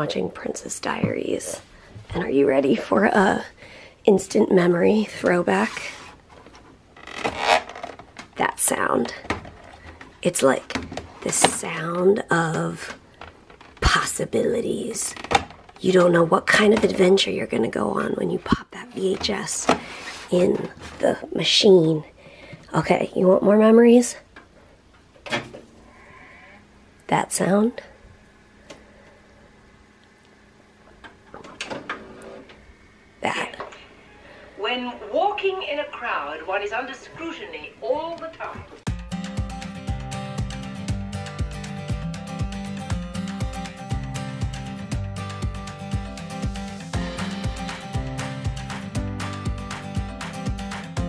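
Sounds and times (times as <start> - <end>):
faint steady hum: 0.0 - 38.9
plastic case scraping: 5.5 - 8.2.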